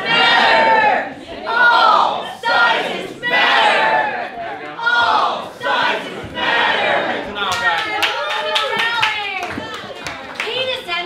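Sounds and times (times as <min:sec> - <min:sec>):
group chanting slogan: 0:00.0 - 0:07.7.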